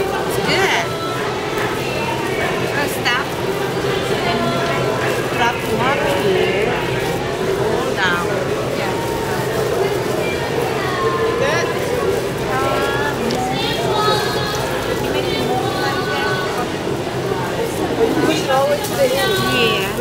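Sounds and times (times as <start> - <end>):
indistinct voices talking: 0.0 - 20.0.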